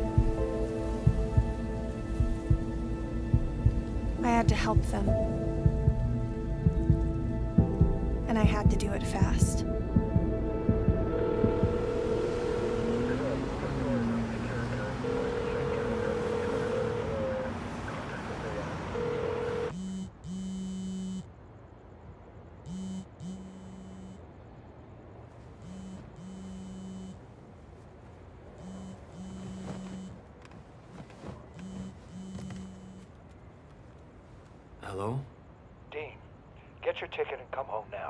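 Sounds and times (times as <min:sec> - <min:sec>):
street noise: 0:00.0 - 0:38.0
steady ringing tone: 0:07.6 - 0:21.3, 0:25.6 - 0:27.2
phone vibrating on a nightstand: 0:19.0 - 0:21.3, 0:22.7 - 0:24.2, 0:25.6 - 0:27.2, 0:28.6 - 0:30.2, 0:31.6 - 0:33.1.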